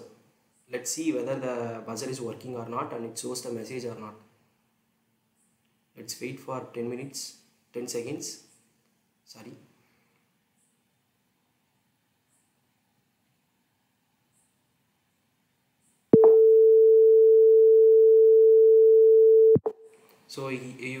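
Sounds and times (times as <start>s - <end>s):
steady single-tone beep: 16.2s - 19.7s.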